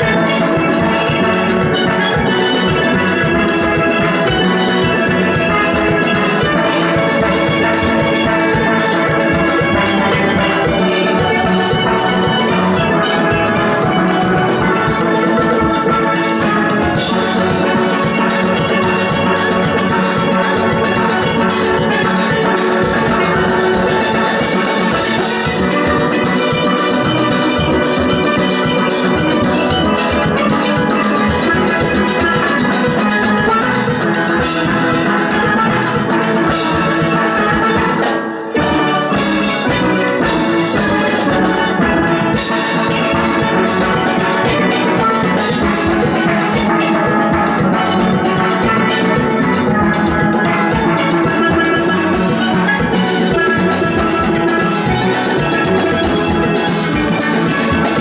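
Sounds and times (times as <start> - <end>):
drum and percussion beat: 0.0 - 58.0
steel pans playing: 0.0 - 58.0.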